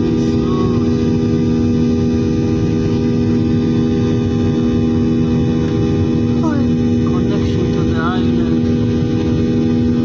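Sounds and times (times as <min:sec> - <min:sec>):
person speaking in cabin: 0:00.0 - 0:01.1, 0:06.3 - 0:09.0
jet engine drone: 0:00.0 - 0:10.0.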